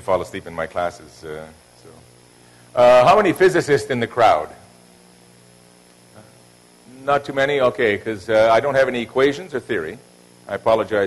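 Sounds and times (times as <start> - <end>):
electrical mains hum: 0.0 - 11.0
faint hiss: 0.0 - 11.0.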